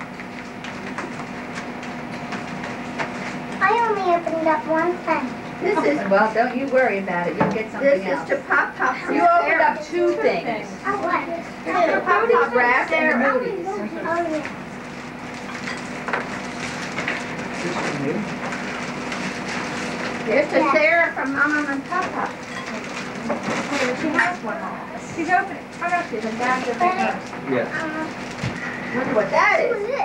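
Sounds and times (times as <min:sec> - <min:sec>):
paper rustling and crinkling: 0:14.9 - 0:24.4, 0:25.2 - 0:28.7.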